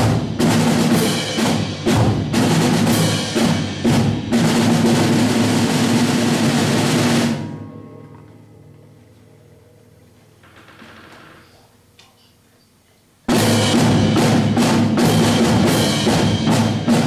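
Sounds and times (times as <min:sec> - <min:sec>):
percussion ensemble drum roll: 0:00.0 - 0:08.0, 0:13.3 - 0:17.0.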